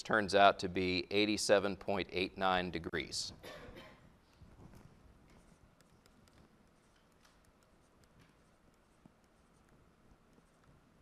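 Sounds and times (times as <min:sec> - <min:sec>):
stylus tapping on tablet screen: 0:04.6 - 0:11.0.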